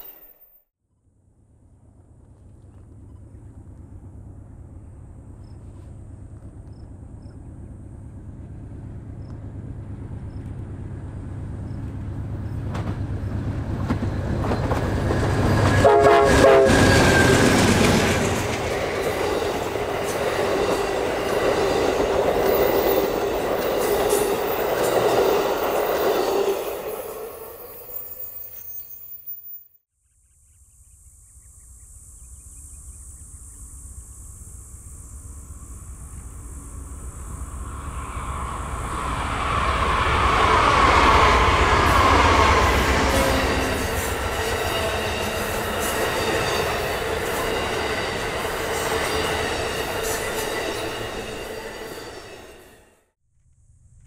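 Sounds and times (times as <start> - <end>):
train wheels squealing: 0.0 - 0.4, 13.8 - 29.7, 36.2 - 53.0
passenger train passing: 7.0 - 29.3, 34.6 - 53.2.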